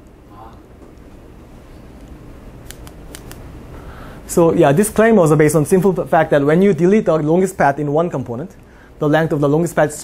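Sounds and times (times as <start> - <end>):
low room hum: 0.0 - 10.0
sharp clicks: 2.0 - 3.4.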